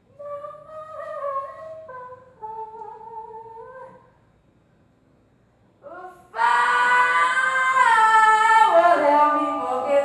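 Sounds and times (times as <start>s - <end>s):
woman singing into a microphone: 5.8s - 10.0s.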